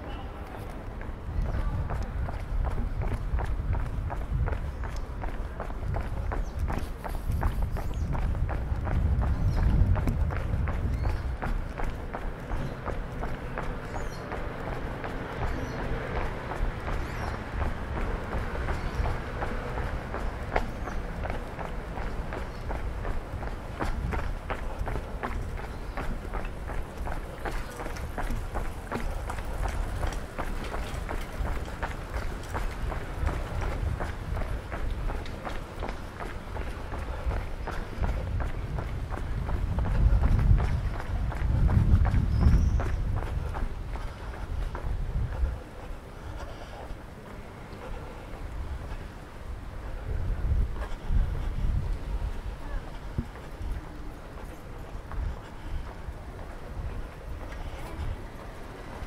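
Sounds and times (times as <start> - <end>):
footsteps on brick pavement: 0.0 - 59.0
street ambience: 0.0 - 59.0.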